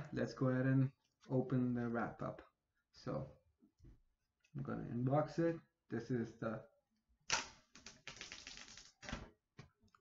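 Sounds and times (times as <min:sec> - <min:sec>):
plastic wrap ripping and crackling: 0:07.3 - 0:09.2.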